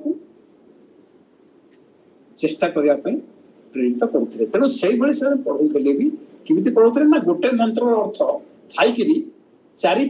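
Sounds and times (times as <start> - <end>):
room hiss: 0.0 - 10.0
man talking: 2.4 - 10.0.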